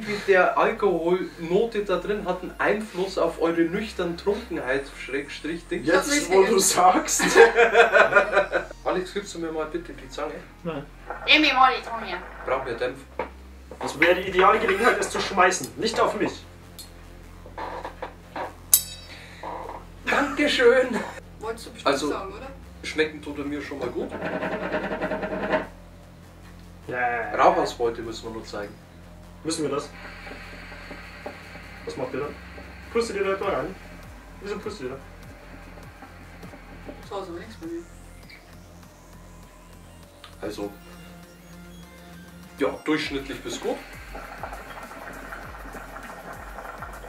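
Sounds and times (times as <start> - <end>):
hookah water bubbling: 29.9 - 37.6, 43.2 - 47.0.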